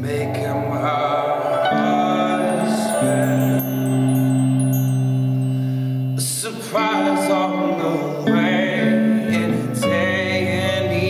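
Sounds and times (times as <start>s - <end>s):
held keyboard chord: 0.0s - 6.4s.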